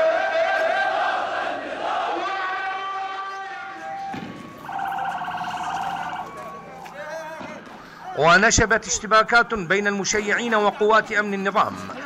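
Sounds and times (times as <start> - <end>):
police siren pulsing tone: 3.6 - 10.0.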